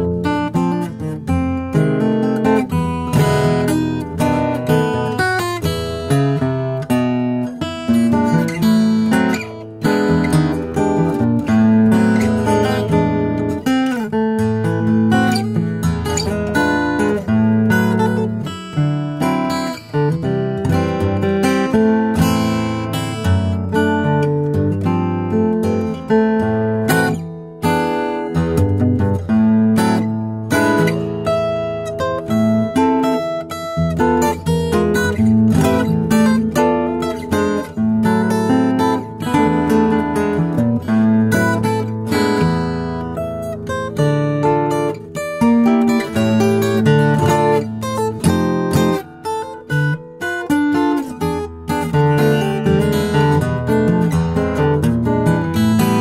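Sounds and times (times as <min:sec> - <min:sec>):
fingerstyle acoustic guitar: 0:00.0 - 0:56.0.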